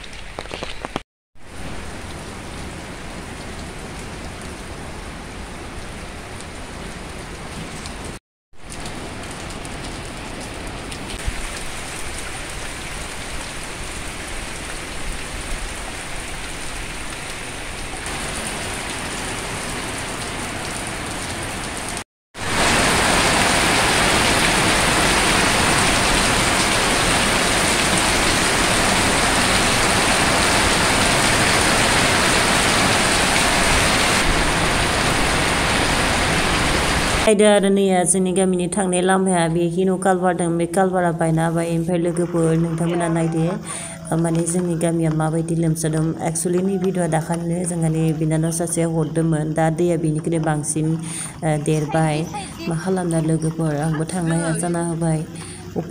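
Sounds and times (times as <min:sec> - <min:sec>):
heavy rain falling: 0:00.0 - 0:37.5, 0:41.5 - 0:55.9.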